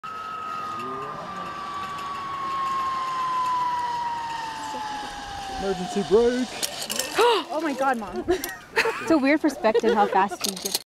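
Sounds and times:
zip-line pulleys whining on cable: 0:00.0 - 0:08.9.

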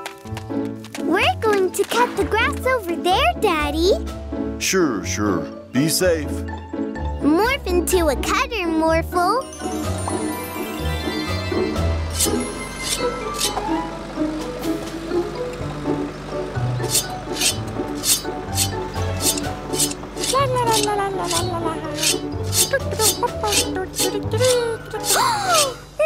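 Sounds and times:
cartoon music with bass beat: 0:16.8 - 0:26.0
high cartoon voice sounds: 0:20.3 - 0:26.0.

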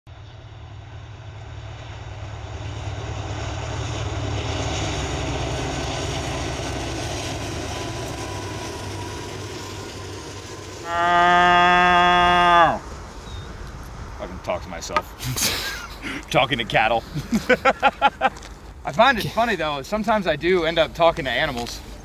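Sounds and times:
freight train rumbling by: 0:00.1 - 0:22.0.

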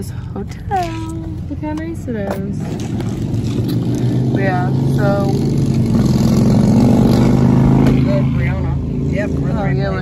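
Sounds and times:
car engine hum in cabin: 0:00.0 - 0:10.0
road rumble: 0:00.0 - 0:10.0.

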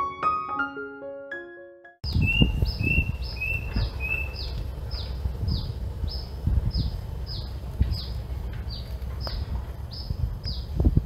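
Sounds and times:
bird drawn-out low notes: 0:02.0 - 0:11.0
low rumbling noise: 0:02.0 - 0:11.0.

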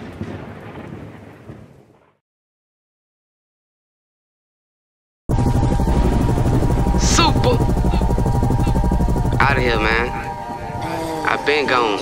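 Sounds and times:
boom rumble and crackle: 0:00.0 - 0:02.2.

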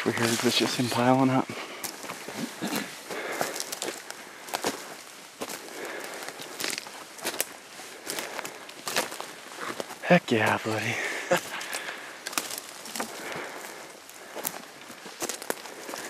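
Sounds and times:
footsteps crunching on forest floor: 0:00.0 - 0:16.0
small sticks snapping: 0:12.2 - 0:13.1.

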